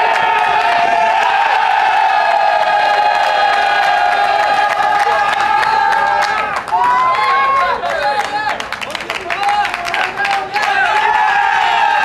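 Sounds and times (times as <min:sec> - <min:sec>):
group of people cheering: 0:00.0 - 0:12.0
people clapping: 0:00.0 - 0:12.0.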